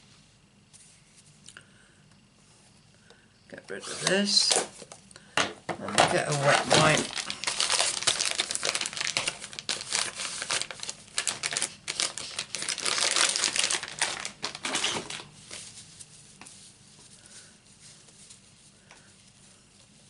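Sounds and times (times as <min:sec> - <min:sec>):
wet-wipe packet crinkling: 0:06.1 - 0:16.3.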